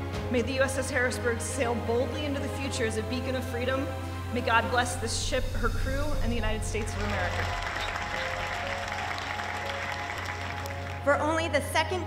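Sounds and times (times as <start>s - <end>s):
background music of held notes: 0.0s - 5.2s, 6.6s - 12.0s
audience applauding: 6.5s - 11.2s.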